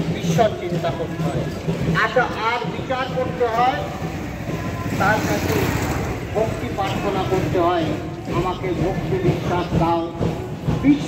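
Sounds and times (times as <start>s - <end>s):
people talking: 0.0s - 4.0s, 4.7s - 11.0s.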